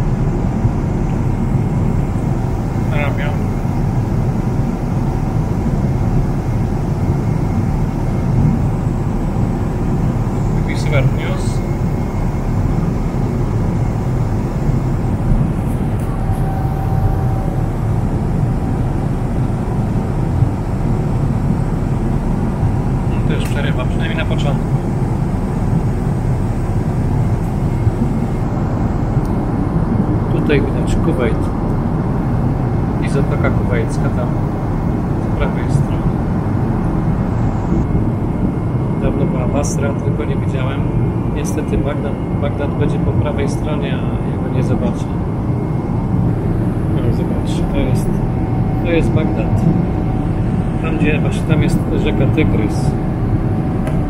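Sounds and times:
airliner cabin noise: 0.0s - 54.0s.

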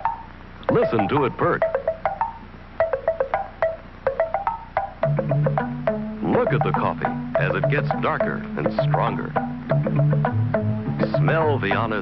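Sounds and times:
low bass line music: 0.0s - 12.0s.

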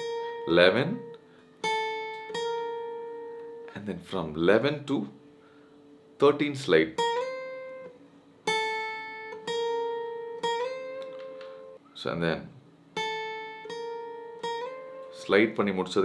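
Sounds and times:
acoustic guitar melody: 0.0s - 12.0s, 12.6s - 16.0s.

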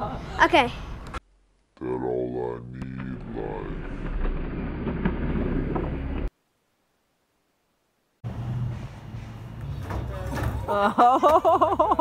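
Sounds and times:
low rumbling noise: 1.3s - 6.3s.

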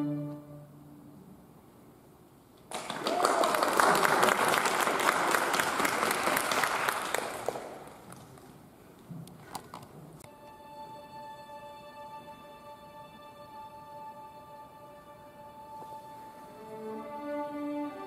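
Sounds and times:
music: 0.0s - 1.2s, 10.2s - 18.0s
audience applauding: 2.7s - 8.2s.

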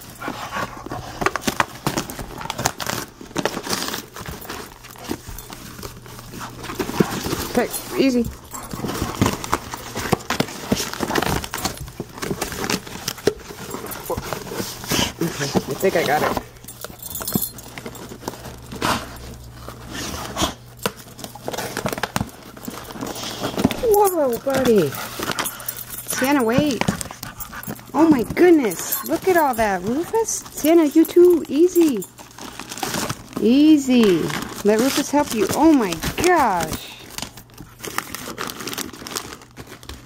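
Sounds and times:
cardboard and paper rustling: 0.0s - 40.0s.

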